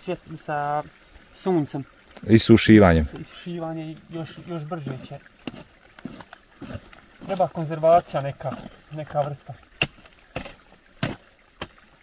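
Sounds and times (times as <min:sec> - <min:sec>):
hammer striking rock: 0:09.8 - 0:11.8.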